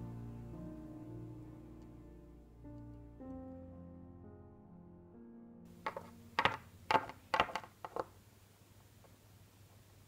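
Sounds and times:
footsteps on hard floor: 5.9s - 8.1s.

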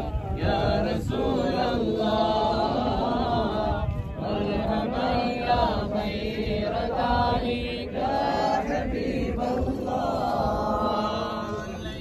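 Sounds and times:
men chanting a prayer: 0.0s - 12.0s.

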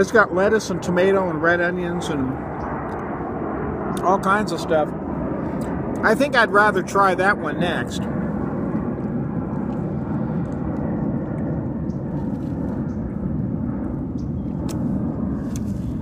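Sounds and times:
distant engine rumble: 0.0s - 16.0s.

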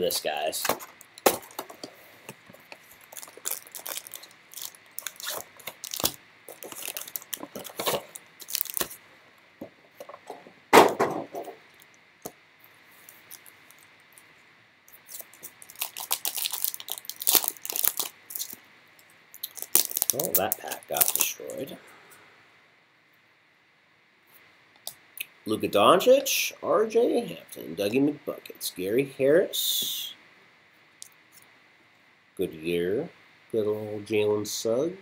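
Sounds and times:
card packs crinkling and tapping: 0.6s - 9.0s, 15.1s - 18.6s, 19.4s - 21.3s
foil wrapper tearing: 2.9s - 9.0s, 15.0s - 18.6s, 19.4s - 21.4s.

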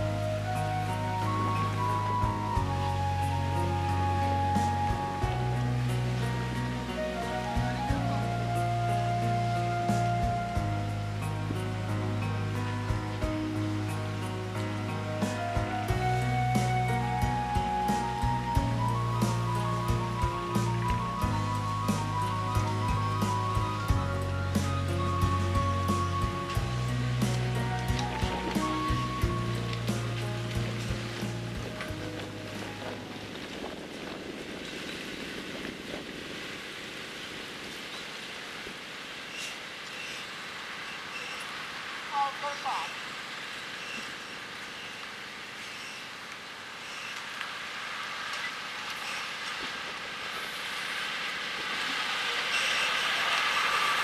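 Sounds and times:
background music with bass line: 0.0s - 33.0s
wind noise: 0.0s - 39.0s.

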